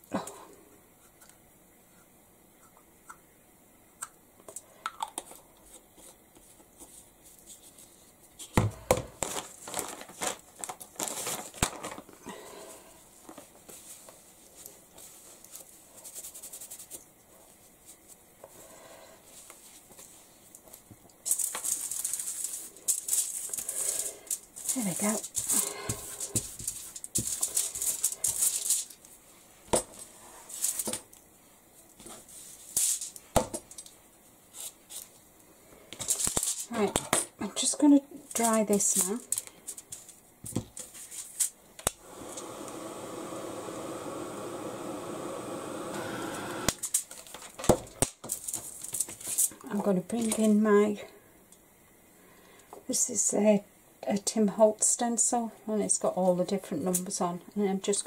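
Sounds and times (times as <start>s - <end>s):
aluminium foil crinkling: 9.2s - 12.3s, 19.6s - 29.2s, 32.3s - 33.9s, 36.0s - 36.8s, 38.2s - 40.2s, 40.8s - 41.6s, 46.8s - 50.6s.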